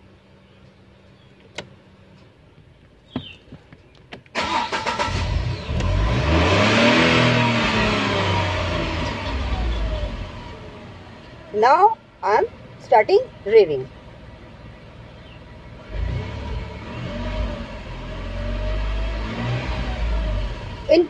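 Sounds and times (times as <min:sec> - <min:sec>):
car engine starting and revving: 0:04.3 - 0:21.0.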